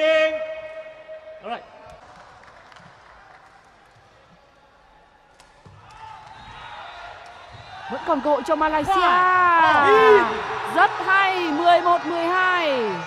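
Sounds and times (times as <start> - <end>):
indoor hall noise: 0.0 - 13.0.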